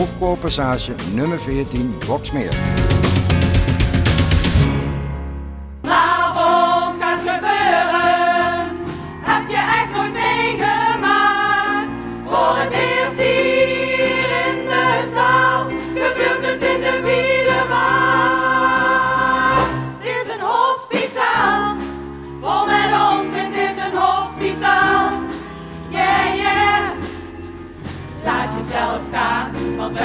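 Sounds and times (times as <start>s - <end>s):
cast singing with instruments: 5.9s - 21.8s.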